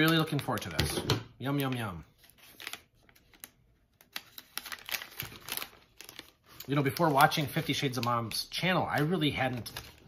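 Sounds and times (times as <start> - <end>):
plastic snack bag crinkling: 1.4 - 10.0.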